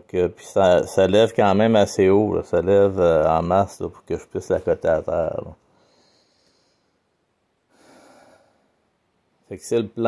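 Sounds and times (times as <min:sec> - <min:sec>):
person breathing through nose: 0:05.7 - 0:07.0, 0:07.7 - 0:08.8.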